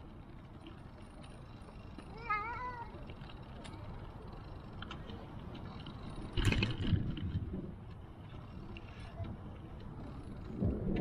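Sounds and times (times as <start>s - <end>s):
bicycle tyres rolling on paving: 0.0s - 11.0s.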